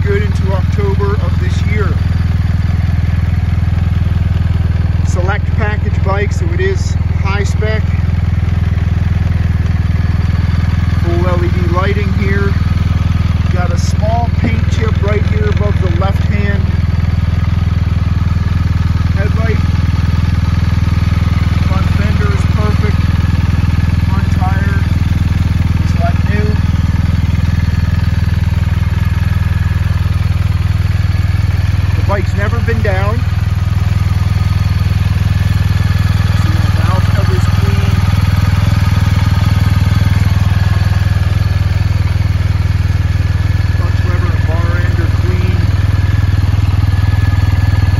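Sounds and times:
motorcycle engine idling: 0:00.0 - 0:47.9.

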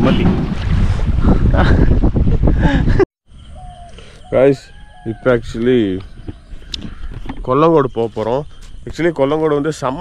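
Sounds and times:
wind buffeting microphone: 0:00.0 - 0:03.0
person laughing: 0:01.4 - 0:03.1
faint outdoor ambience: 0:03.3 - 0:10.0.

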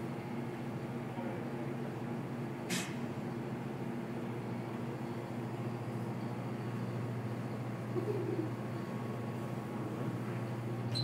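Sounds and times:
brief hiss: 0:02.7 - 0:03.0.

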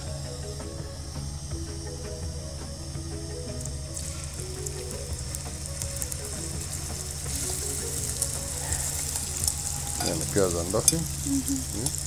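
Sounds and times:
onions sizzling in a pan: 0:03.7 - 0:12.0.

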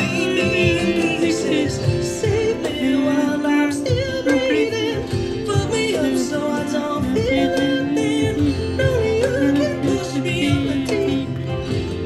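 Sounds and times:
man singing a pop ballad: 0:00.0 - 0:12.0
soft backing music: 0:00.0 - 0:12.0.

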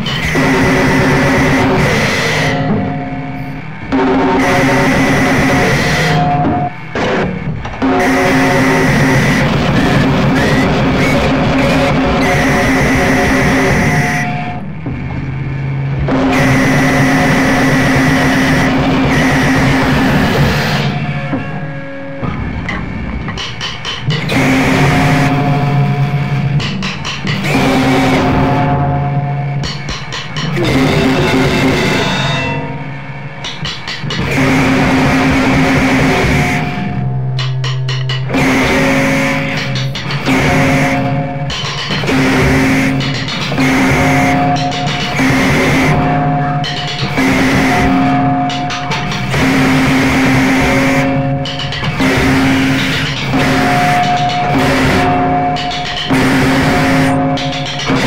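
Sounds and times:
distorted noise music: 0:00.0 - 0:58.0.

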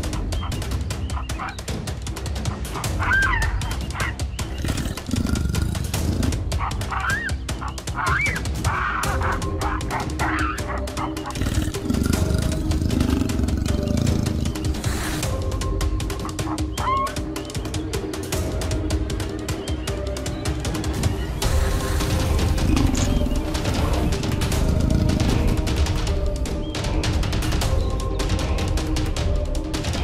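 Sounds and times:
background music: 0:00.0 - 0:30.0
baboons barking: 0:02.7 - 0:15.3, 0:16.2 - 0:17.2, 0:21.6 - 0:25.6.

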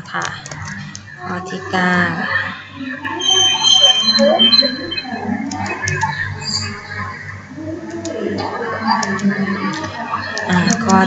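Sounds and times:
sharp clicks: 0:00.0 - 0:01.1, 0:05.5 - 0:06.7, 0:07.9 - 0:08.2, 0:08.9 - 0:11.0
high-pitched tone: 0:00.0 - 0:11.0.

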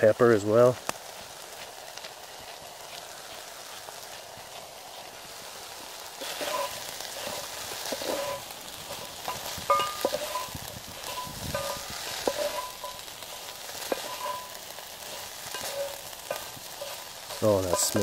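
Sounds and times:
vegetables sizzling in a pan: 0:00.0 - 0:18.0
spatula scraping iron pan: 0:06.2 - 0:18.0.

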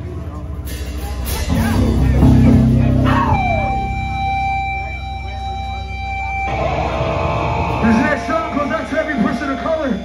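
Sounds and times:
low band chord: 0:00.6 - 0:07.8.

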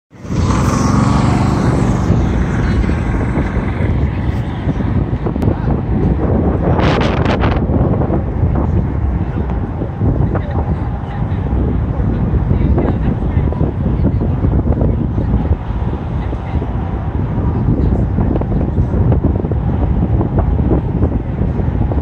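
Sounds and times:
diesel truck engine running: 0:00.1 - 0:07.0.

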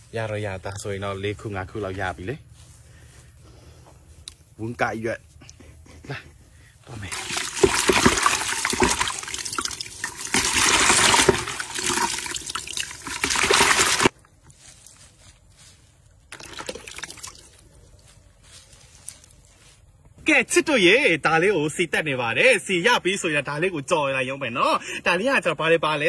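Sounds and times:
water pouring with splashing hiss: 0:07.0 - 0:14.1.

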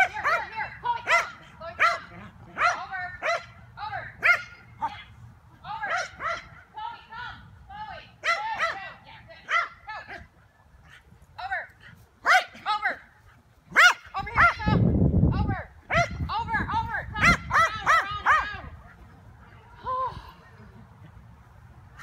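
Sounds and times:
small dog barking: 0:01.1 - 0:03.5, 0:05.9 - 0:06.6, 0:13.7 - 0:14.6.

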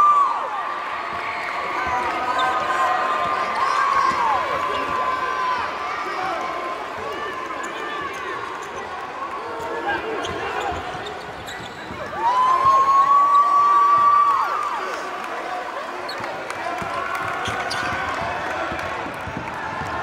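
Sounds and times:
crowd voices: 0:00.0 - 0:20.0
sneaker squeaks: 0:01.8 - 0:05.2, 0:07.3 - 0:13.6, 0:16.1 - 0:16.3, 0:17.1 - 0:18.4.

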